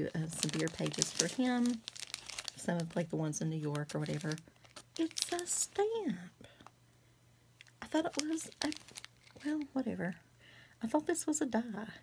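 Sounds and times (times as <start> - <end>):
woman speaking: 0.0 - 1.8, 2.6 - 4.4, 5.0 - 6.4, 7.8 - 10.2, 10.8 - 12.0.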